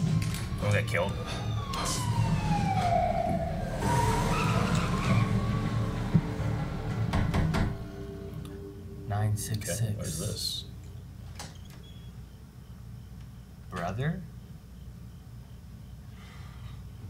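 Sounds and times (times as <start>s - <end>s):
low rumble: 0.0s - 9.1s
siren wailing: 0.0s - 9.1s.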